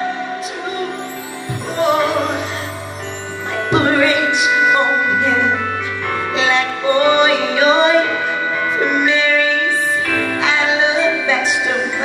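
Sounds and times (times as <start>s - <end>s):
held accompaniment chords: 0.0s - 12.0s
woman singing gospel: 0.0s - 12.0s.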